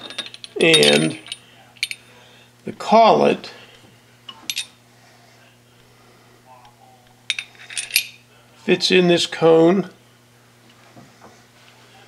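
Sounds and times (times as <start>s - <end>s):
metallic clinks: 0.0s - 2.0s, 4.5s - 4.8s, 7.3s - 8.2s.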